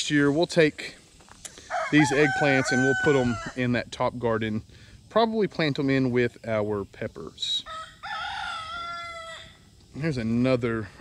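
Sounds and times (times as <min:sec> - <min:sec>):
rooster crowing: 0:01.6 - 0:03.6, 0:07.6 - 0:09.6.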